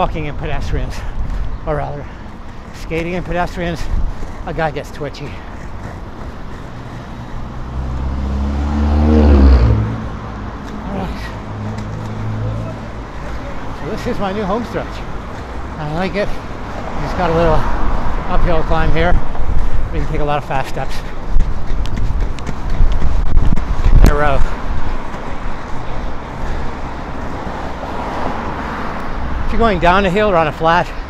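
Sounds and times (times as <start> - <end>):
wheels rolling on asphalt: 0.0 - 31.0
car passing close by: 6.7 - 13.2, 26.2 - 29.4
skate wheels clacking on pavement: 21.2 - 24.0.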